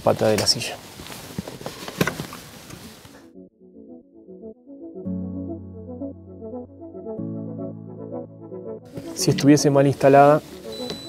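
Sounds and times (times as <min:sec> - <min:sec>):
background music with low notes: 0:03.3 - 0:11.0.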